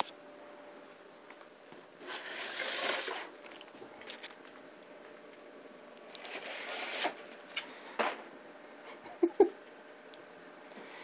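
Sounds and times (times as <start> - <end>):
cardboard box scraping rustling: 2.0 - 3.4, 6.2 - 7.3.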